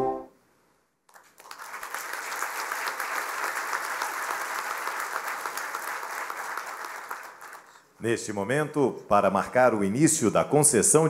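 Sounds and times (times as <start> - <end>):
audience applauding: 1.1 - 7.8.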